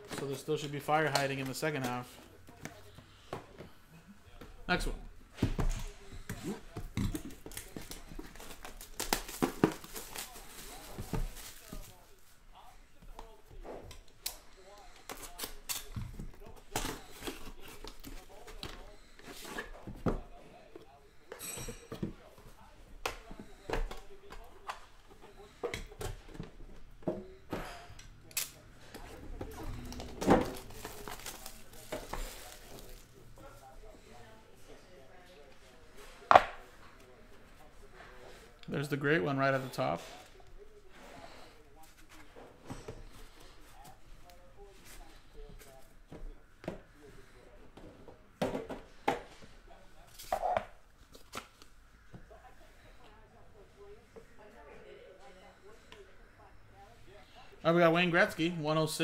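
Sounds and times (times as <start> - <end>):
shrink-wrap crinkling and tearing: 30.5 - 33.0.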